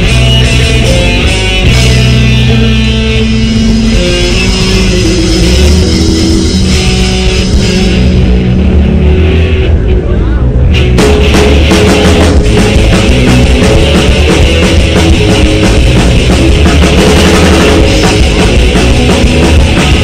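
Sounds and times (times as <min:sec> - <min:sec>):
drums and cymbals: 0:00.0 - 0:08.7, 0:10.8 - 0:20.0
distorted electric guitar chords: 0:00.0 - 0:20.0
punk band playing live: 0:00.0 - 0:20.0.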